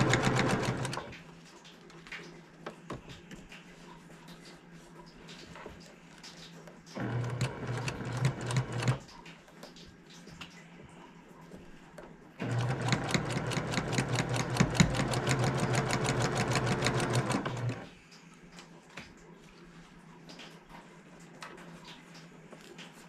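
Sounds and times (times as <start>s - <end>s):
sewing machine stitching: 0.0s - 1.1s, 7.0s - 9.1s, 12.4s - 17.9s.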